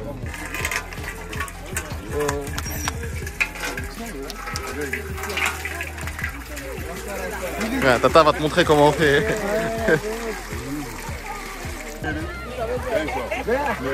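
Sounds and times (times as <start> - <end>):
pump lever working: 0.0 - 12.2
people's voices: 0.0 - 13.9
water pouring into metal basin: 0.0 - 13.9.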